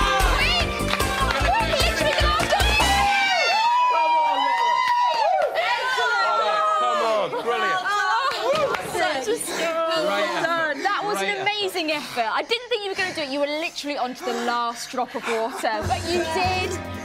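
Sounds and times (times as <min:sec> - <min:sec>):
excited voices shouting: 0:00.0 - 0:11.9.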